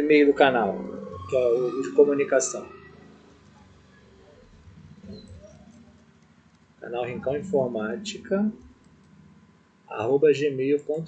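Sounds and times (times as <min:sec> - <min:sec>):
man speaking: 0:00.0 - 0:02.7, 0:06.8 - 0:08.6, 0:09.9 - 0:11.0
faint murmur of man's voice: 0:06.8 - 0:08.6.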